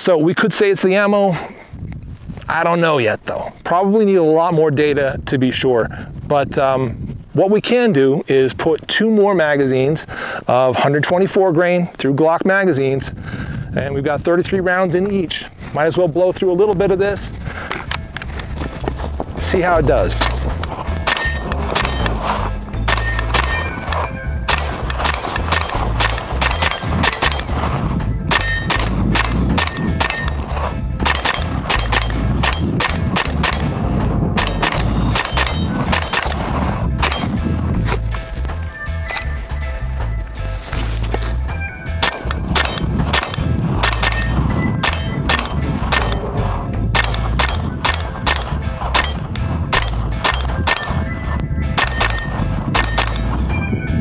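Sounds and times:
rapid gunshots: 0:20.2 - 0:22.3, 0:22.9 - 0:27.7, 0:28.3 - 0:37.4, 0:42.0 - 0:51.1
metallic ringing: 0:21.0 - 0:22.2, 0:22.8 - 0:36.4, 0:37.0 - 0:37.5, 0:42.0 - 0:53.6.

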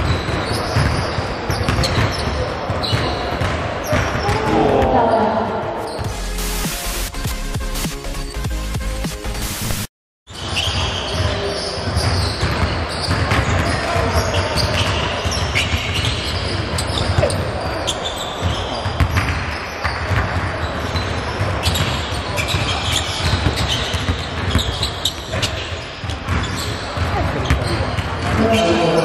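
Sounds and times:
people talking: 0:03.8 - 0:05.7, 0:27.0 - 0:29.0.

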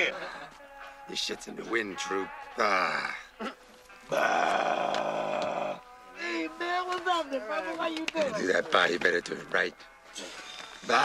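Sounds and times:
long vocal call: 0:02.3 - 0:06.6.

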